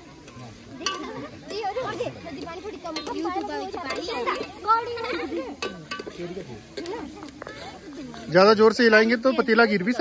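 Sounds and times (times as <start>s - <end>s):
children talking and chattering: 0.0s - 10.0s.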